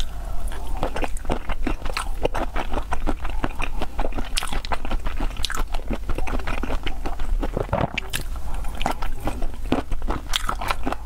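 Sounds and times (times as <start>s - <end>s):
chewing shrimp: 0.0s - 11.0s.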